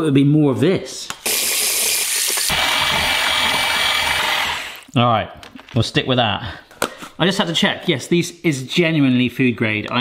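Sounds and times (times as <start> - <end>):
electric hand mixer running: 1.2 - 4.9.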